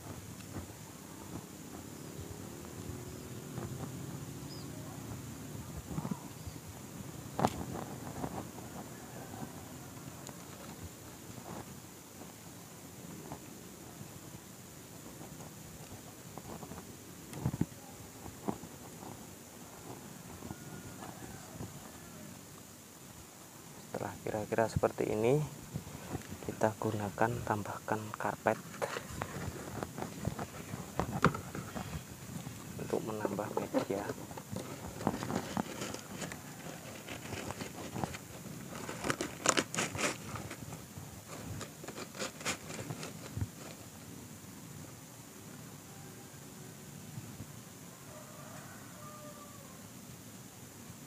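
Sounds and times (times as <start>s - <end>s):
hands rustling and scraping soil: 0.0s - 44.1s
carpet rustling: 28.5s - 43.9s.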